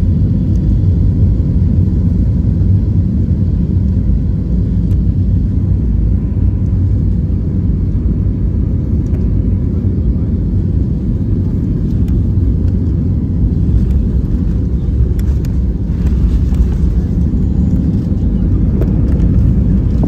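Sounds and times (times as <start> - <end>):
airplane cabin rumble: 0.0 - 20.0.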